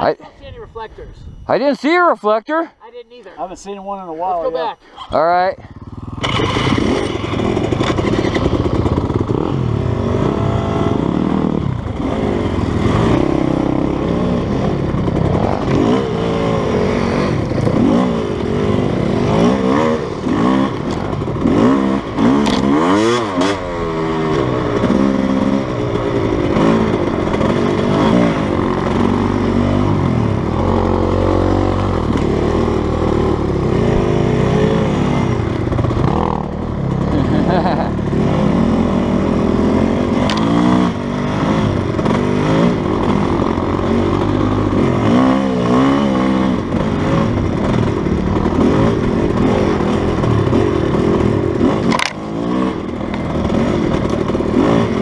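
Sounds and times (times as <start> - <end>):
dirt bike engine revving: 5.1 - 55.0.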